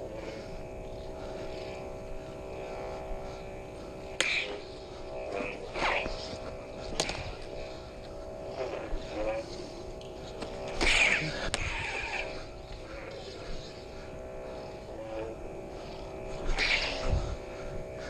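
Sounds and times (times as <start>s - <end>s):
lightsaber buzzing hum: 0.0s - 18.0s
lightsaber swing whooshes: 10.7s - 12.9s.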